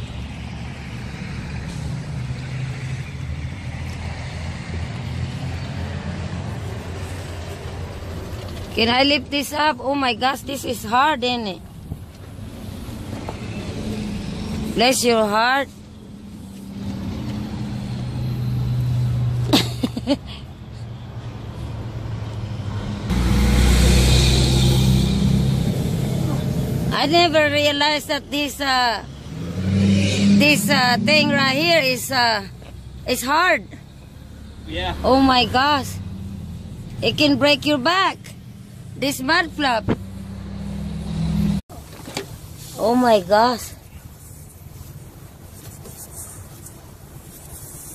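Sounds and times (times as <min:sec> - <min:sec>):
road noise: 0:00.0 - 0:47.9
vehicle engine rumble: 0:00.0 - 0:47.9.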